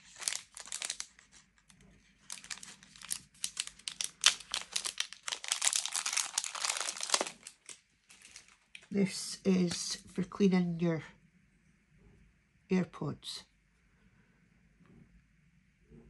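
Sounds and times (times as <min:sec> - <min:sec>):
plastic packaging crinkling: 0:00.0 - 0:08.9.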